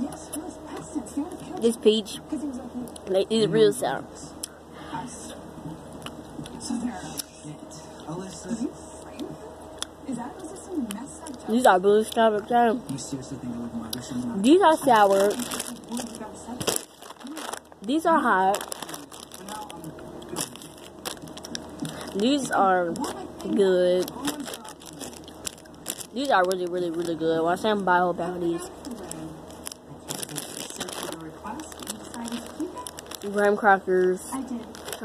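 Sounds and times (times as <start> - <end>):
plastic bag crinkling: 14.5 - 35.0.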